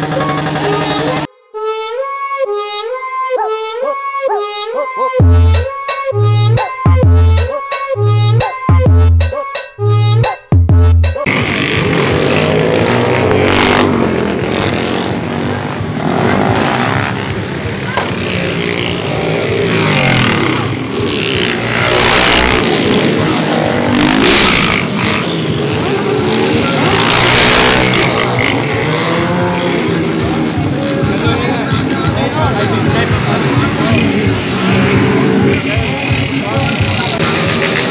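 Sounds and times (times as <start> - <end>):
music playing: 0.0 - 37.9
motorcycles revving and passing: 11.2 - 37.9.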